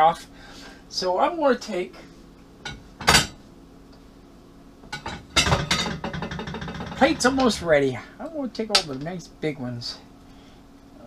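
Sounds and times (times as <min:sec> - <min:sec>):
ceramic plates clinking: 0:05.0 - 0:07.0.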